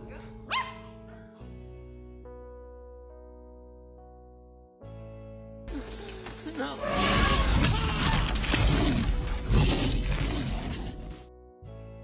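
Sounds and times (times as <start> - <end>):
small dog yelping: 0.5 - 0.9.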